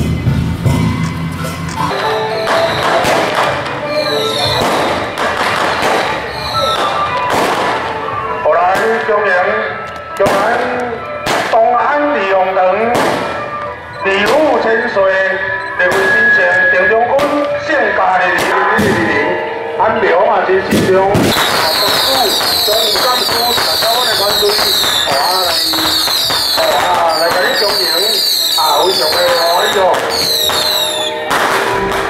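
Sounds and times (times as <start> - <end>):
ringing percussion strokes: 0.0 - 8.2, 21.3 - 32.0
wavering melody line: 0.6 - 8.7, 21.4 - 32.0.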